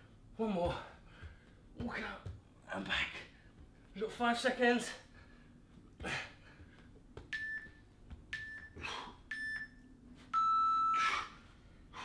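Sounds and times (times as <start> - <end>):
interval timer beeping: 7.2 - 11.0.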